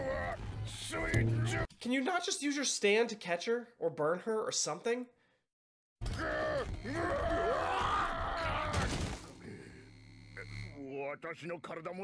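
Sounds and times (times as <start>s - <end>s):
voice groaning and crying out: 0.0s - 0.4s, 6.0s - 9.8s.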